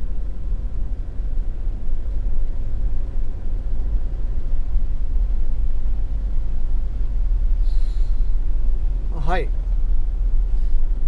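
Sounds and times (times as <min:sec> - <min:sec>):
van engine and road noise: 0:00.0 - 0:11.0.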